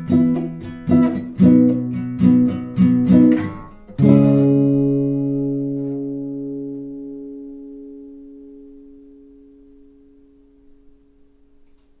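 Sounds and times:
acoustic guitar chord ringing: 0:00.0 - 0:11.8.

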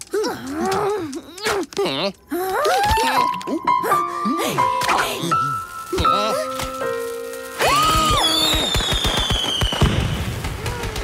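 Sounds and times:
firework crackling pops: 0:05.6 - 0:11.0
firework bang: 0:08.1 - 0:10.8.

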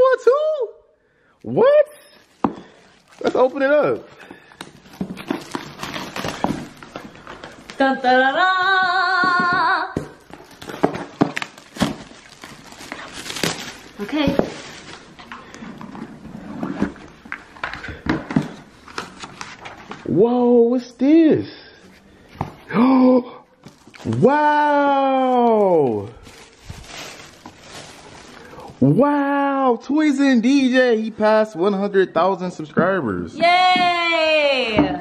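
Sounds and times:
shrink wrap crinkling and tearing: 0:02.2 - 0:09.4, 0:10.2 - 0:15.8, 0:23.6 - 0:28.9
cardboard box unpacking knocks and rustles: 0:04.6 - 0:07.8, 0:09.2 - 0:20.1.

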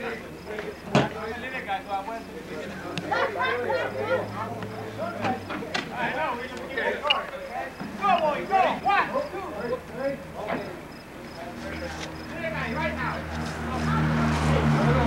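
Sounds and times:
people talking over one another: 0:00.0 - 0:15.0.

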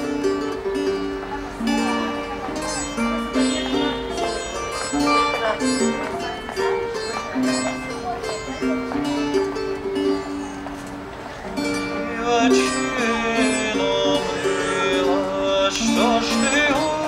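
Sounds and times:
plucked string instrument melody: 0:00.0 - 0:17.0.

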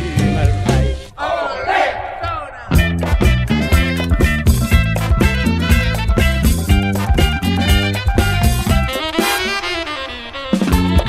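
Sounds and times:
latin dance-band music: 0:00.0 - 0:11.0
crowd shouting together: 0:01.1 - 0:03.1.

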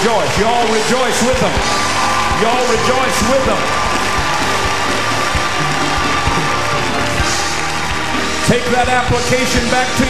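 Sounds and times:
congregation cheering and shouting: 0:00.0 - 0:10.0
people clapping: 0:00.0 - 0:10.0
praise band playing upbeat music: 0:00.0 - 0:10.0.

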